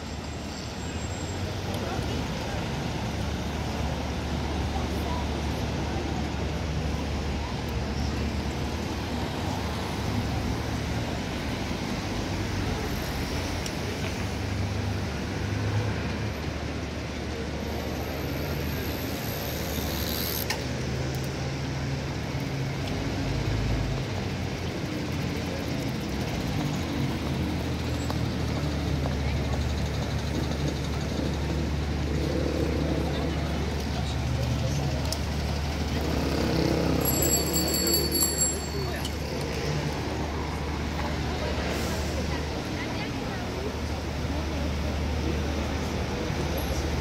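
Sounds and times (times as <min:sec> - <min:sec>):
cars passing and idling: 0:00.0 - 0:47.0
road noise: 0:00.0 - 0:47.0.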